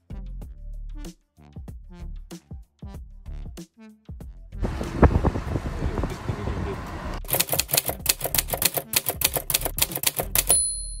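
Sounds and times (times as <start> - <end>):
typewriter key clacks: 7.3 - 10.8
short ringing tone: 10.5 - 11.0.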